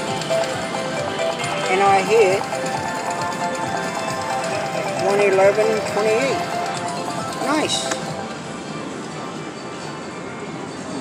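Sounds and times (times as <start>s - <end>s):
slot machine music: 0.0s - 9.8s.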